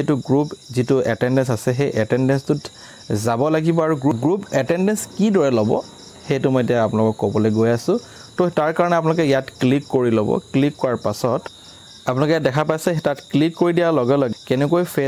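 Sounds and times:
man talking: 0.0 - 11.5, 12.1 - 15.0
faint high-pitched whine: 0.0 - 15.0.

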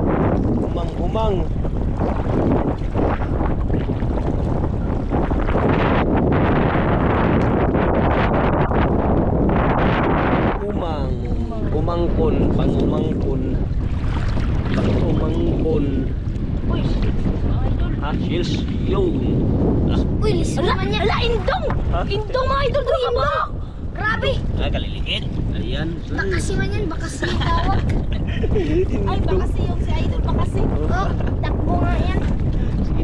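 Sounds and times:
wind buffeting microphone: 0.0 - 33.0
voices: 20.2 - 27.8.

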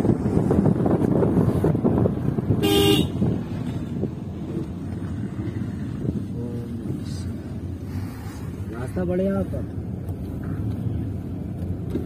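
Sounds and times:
wind and road noise rumble: 0.0 - 12.0
vehicle horn toot: 2.6 - 3.2.

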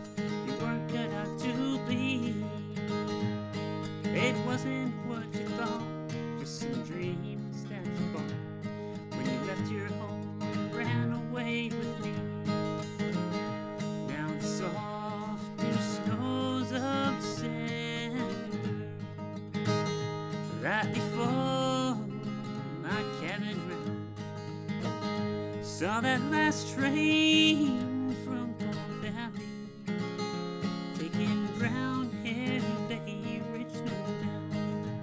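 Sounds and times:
acoustic guitar picked melody: 0.0 - 35.0.

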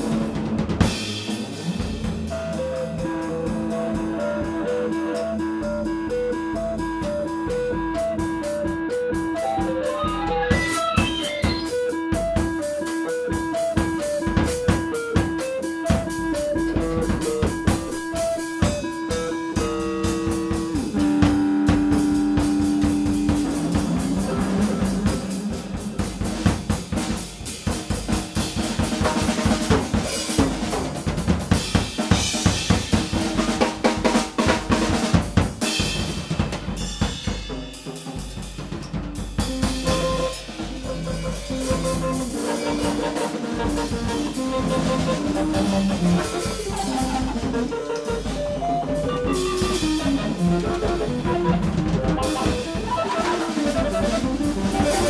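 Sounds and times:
electric guitar improvising: 0.0 - 27.5, 39.4 - 55.0
drum kit playing: 0.0 - 55.0
cymbals washing: 35.6 - 55.0.

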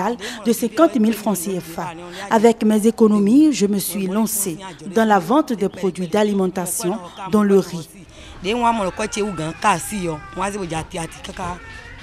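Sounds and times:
woman talking: 0.0 - 8.0, 8.6 - 11.6.

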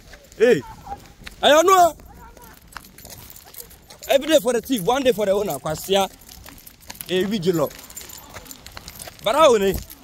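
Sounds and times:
man shouting: 0.4 - 2.6.

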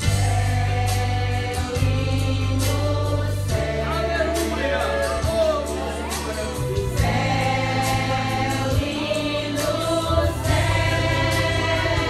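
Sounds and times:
choir singing a hymn: 0.0 - 12.0
low bass accompaniment: 0.0 - 12.0.

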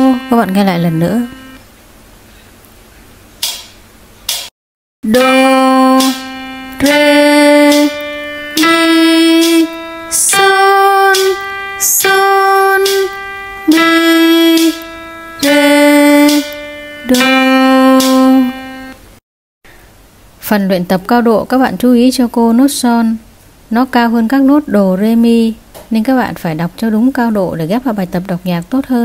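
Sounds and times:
sustained instrument notes: 0.0 - 1.6, 5.0 - 19.2.

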